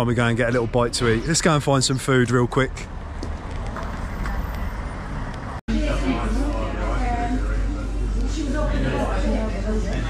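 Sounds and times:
street traffic rumble: 0.0 - 10.0
voices indoors: 5.7 - 10.0.

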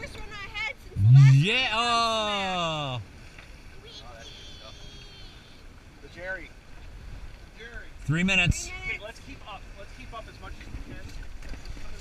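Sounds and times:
wind and water noise: 0.0 - 12.0.

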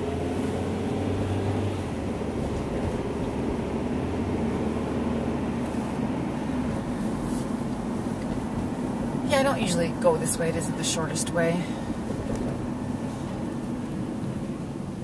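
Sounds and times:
car cabin engine hum: 0.0 - 15.0.

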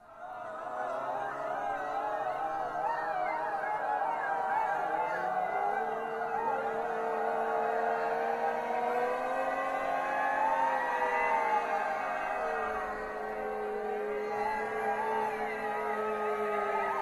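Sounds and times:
choir holding long tones: 0.0 - 17.0.

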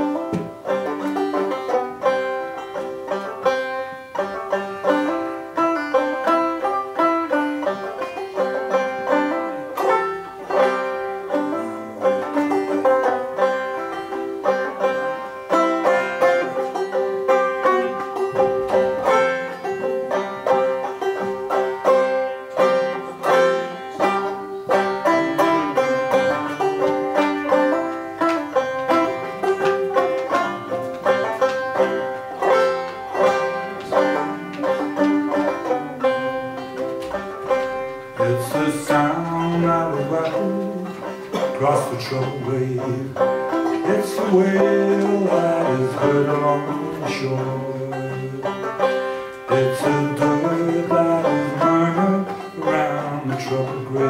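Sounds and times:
banjo picking: 0.0 - 54.0.

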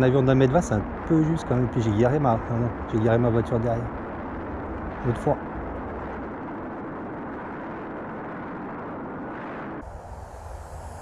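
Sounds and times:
rushing wind: 0.0 - 11.0.

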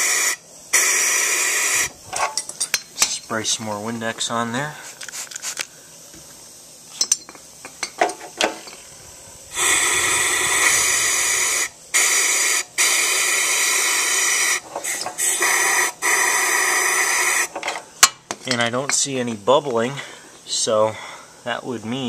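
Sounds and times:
compressed-air blow gun hissing: 0.0 - 2.4, 8.7 - 17.6.

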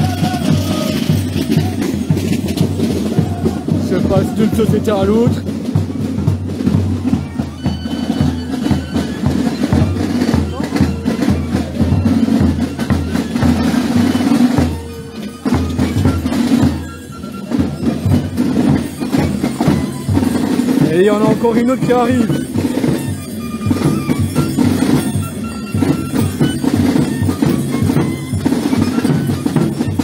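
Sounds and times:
crowd chatter: 0.0 - 30.0
snare drums: 0.0 - 30.0.

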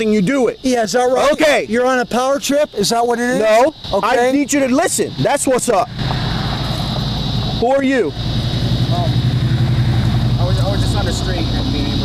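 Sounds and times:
steady low rumble: 3.8 - 12.0.

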